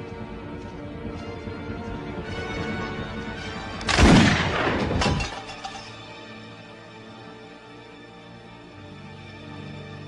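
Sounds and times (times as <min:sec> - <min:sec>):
film soundtrack music: 0:00.0 - 0:10.0.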